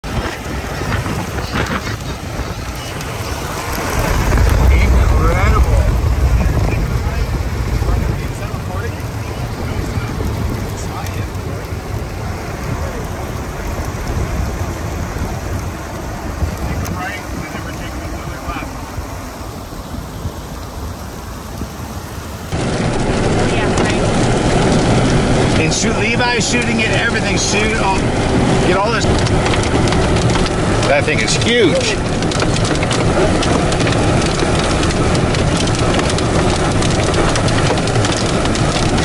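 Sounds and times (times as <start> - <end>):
rain: 0.0 - 39.0
storm wind buffeting microphone: 0.0 - 39.0.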